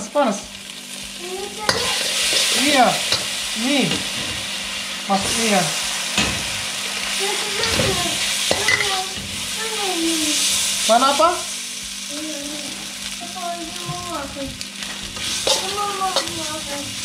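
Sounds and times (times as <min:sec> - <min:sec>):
food sizzling in wok: 0:00.0 - 0:17.0
spatula knocking pan: 0:01.7 - 0:04.2, 0:07.6 - 0:09.1, 0:15.2 - 0:16.5
metal spatula scraping: 0:01.7 - 0:04.4, 0:14.8 - 0:17.0.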